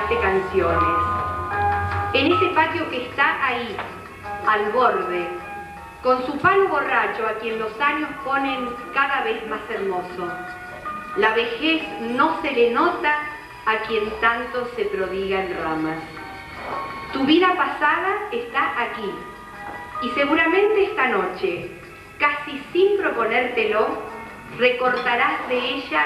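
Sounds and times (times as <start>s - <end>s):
soft instrumental music: 0.0s - 26.0s.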